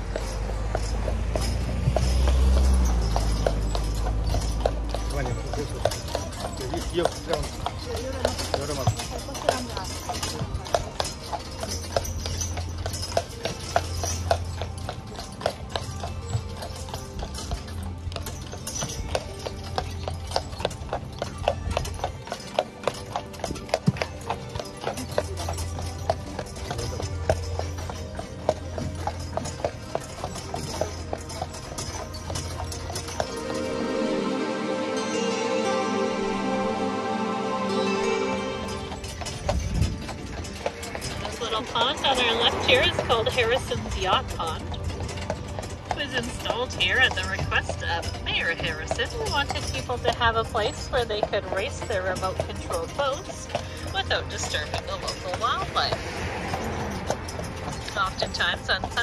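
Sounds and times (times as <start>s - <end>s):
horse hooves on paved road: 0.0s - 34.3s, 37.7s - 59.0s.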